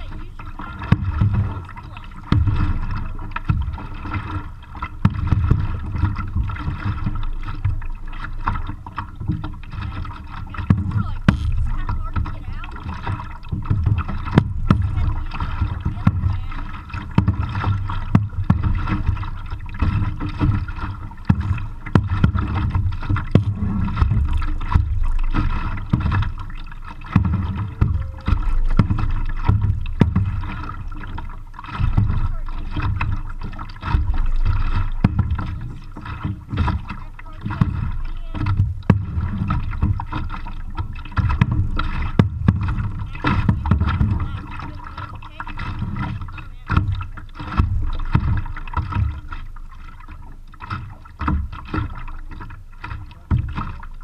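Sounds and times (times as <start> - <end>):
muffled rumble of water and wind: 0.0 - 54.0
paddles knocking and clicking: 0.0 - 54.0.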